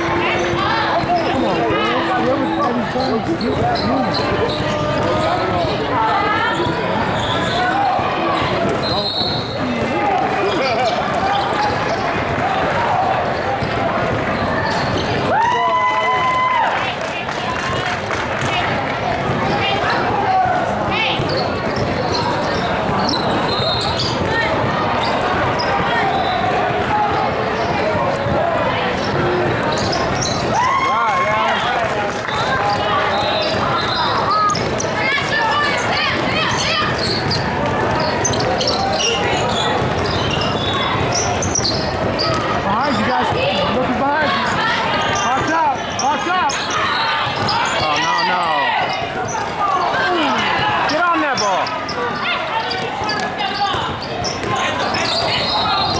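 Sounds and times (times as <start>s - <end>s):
basketball bouncing: 0.0s - 7.6s, 8.4s - 15.3s, 17.6s - 26.9s, 36.1s - 43.6s
people calling out and talking: 0.0s - 55.9s.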